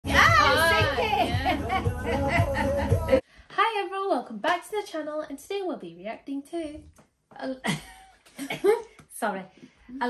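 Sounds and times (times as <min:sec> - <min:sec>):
high excited voices: 0:00.0 - 0:03.2
music with steady beat: 0:00.0 - 0:03.2.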